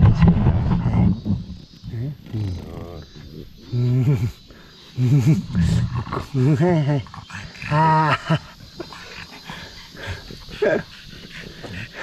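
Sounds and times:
faint dog sounds: 0:02.0 - 0:12.0.

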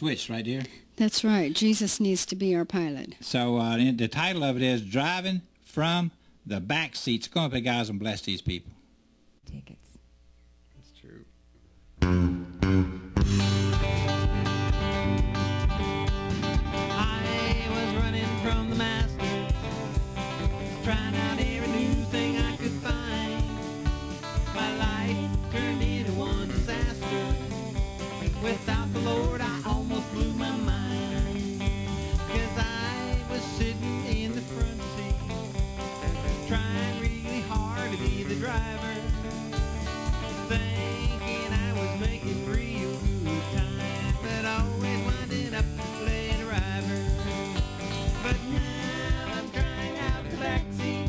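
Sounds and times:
country gospel band playing: 0:12.0 - 0:51.0.

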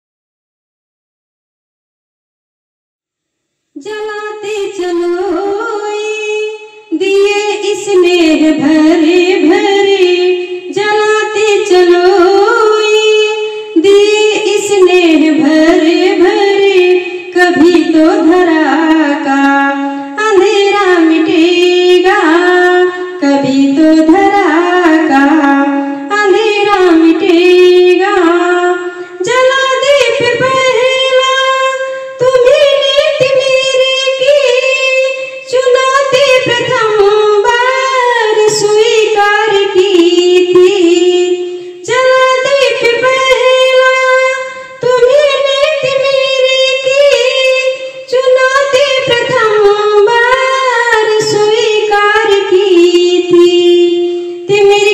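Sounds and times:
woman singing: 0:03.8 - 0:54.9.

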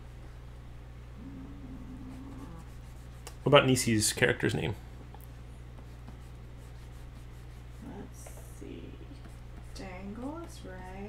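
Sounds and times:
steady electrical hum: 0:00.0 - 0:11.0
low murmur: 0:01.0 - 0:05.0
pen scratching on drawing tablet: 0:09.1 - 0:11.0.

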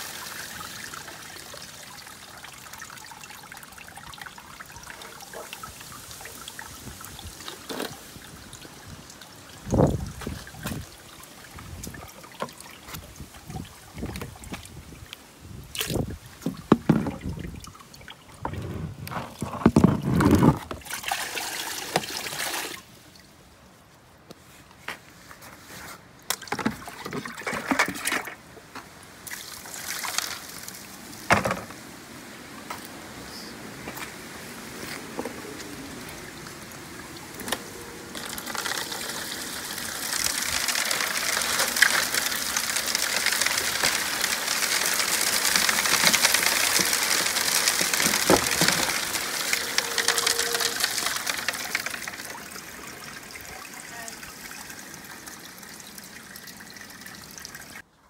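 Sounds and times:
water pouring over a sluice: 0:00.0 - 0:22.9, 0:26.3 - 0:28.5, 0:29.2 - 0:31.6, 0:35.4 - 0:57.9.

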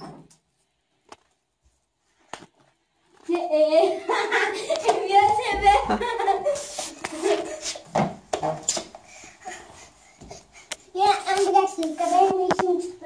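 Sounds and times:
child chanting: 0:11.0 - 0:13.0.

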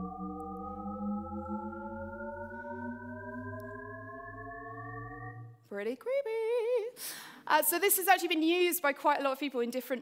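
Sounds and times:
endlessly rising pure tone: 0:00.0 - 0:05.7.

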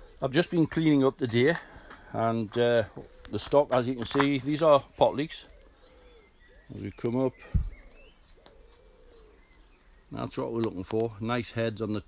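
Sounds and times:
low drawn-out bird call: 0:00.0 - 0:00.5, 0:04.6 - 0:10.5.

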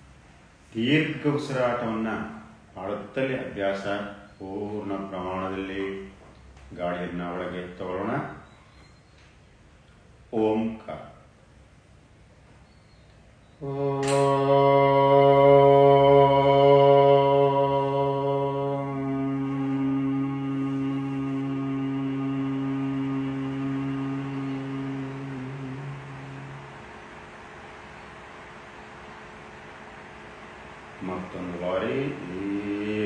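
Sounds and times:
faint room hiss: 0:00.0 - 0:33.0
man chanting low hum: 0:00.6 - 0:08.5, 0:10.3 - 0:11.4, 0:13.6 - 0:27.2, 0:30.8 - 0:33.0.

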